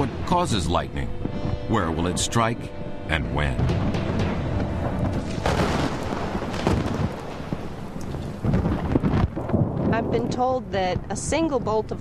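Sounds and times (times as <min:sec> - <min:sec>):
thunder rumbling: 0:03.1 - 0:12.0.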